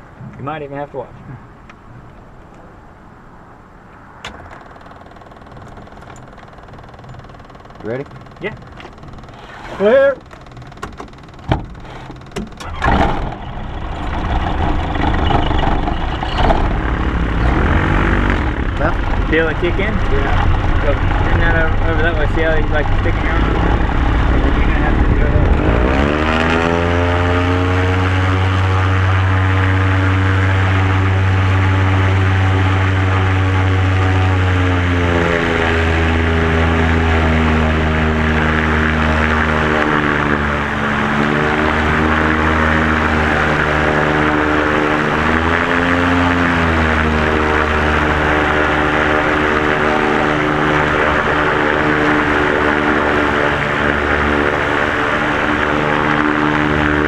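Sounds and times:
propeller engine at high power: 4.0 - 57.0.

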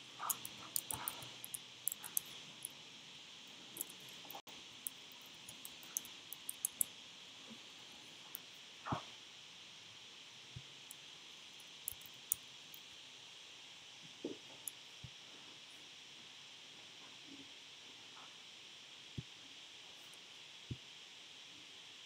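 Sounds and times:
computer keys clicking: 0.2 - 2.8, 3.8 - 6.9.

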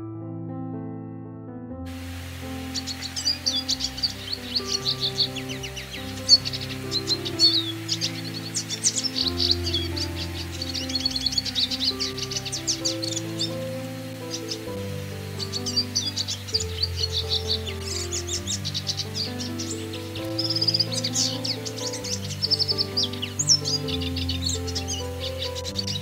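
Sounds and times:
soft keyboard music: 0.0 - 26.0
bird twittering song: 2.0 - 26.0.

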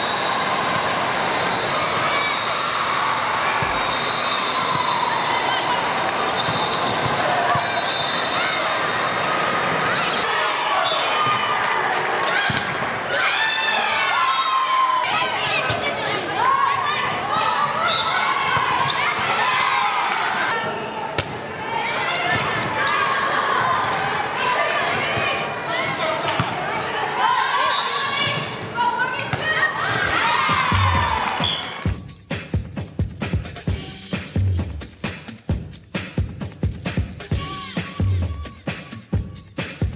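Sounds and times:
players calling out: 0.0 - 31.9
sneakers squeaking on floor: 3.6 - 4.9, 6.1 - 10.2, 15.4 - 19.3, 22.2 - 23.2, 24.8 - 26.6, 27.7 - 30.0, 31.4 - 32.1.

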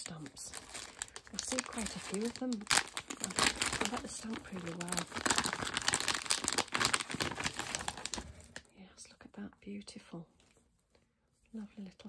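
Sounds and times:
plastic bag crinkling: 0.0 - 8.7.

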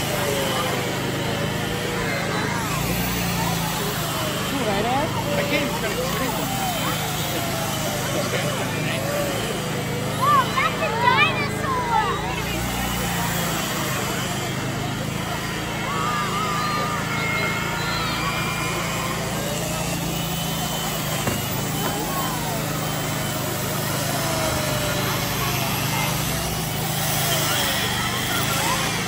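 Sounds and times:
children calling out: 0.0 - 29.0
crowd chatter: 0.0 - 29.0
power tool cutting ice: 0.0 - 29.0.

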